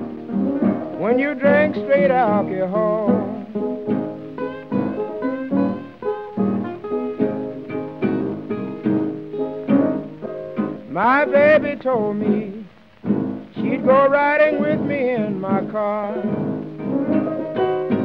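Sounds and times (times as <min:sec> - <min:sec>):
blues piano and acoustic guitar: 0:00.0 - 0:18.0.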